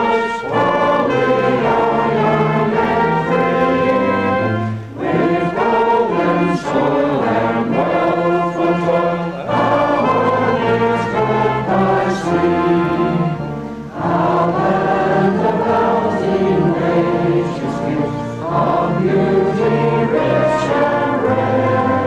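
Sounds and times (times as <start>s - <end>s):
brass band playing: 0.0s - 22.0s
voices singing a hymn: 0.0s - 22.0s.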